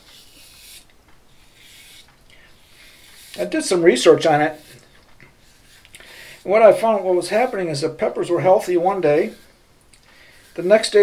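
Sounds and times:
razor scraping stubble: 0.0 - 11.0.

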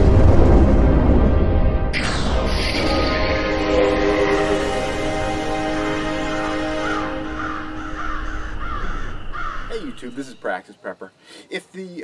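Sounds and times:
low rumble: 0.0 - 5.8
intro music chord: 0.0 - 10.3
crow cawing: 5.2 - 10.4.

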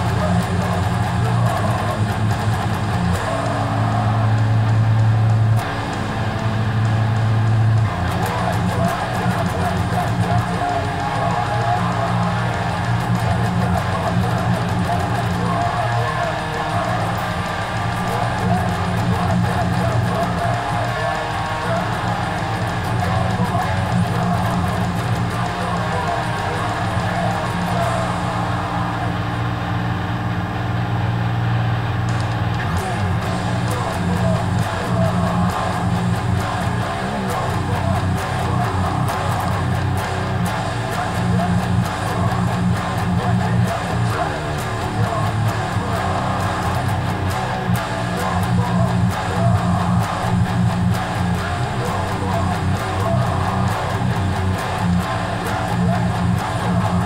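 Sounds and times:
electric guitar playing heavy riffs: 0.0 - 57.0.

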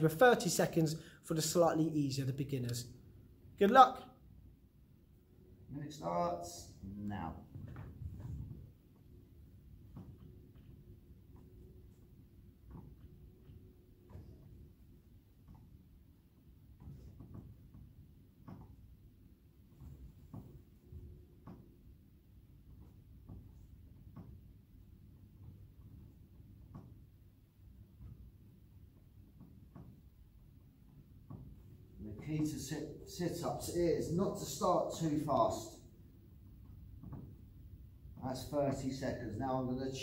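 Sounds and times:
low background hum: 0.0 - 40.0
rustles and knocks on exercise mat: 7.3 - 40.0.

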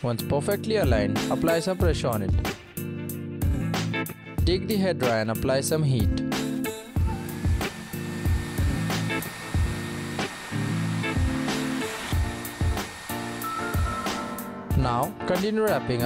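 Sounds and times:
background music with steady beat: 0.0 - 16.0
hair dryer blowing: 6.6 - 14.6.

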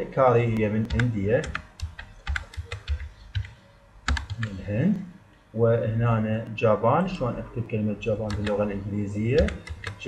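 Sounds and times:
keyboard keystrokes: 0.8 - 4.5, 8.2 - 8.6, 9.4 - 10.0.

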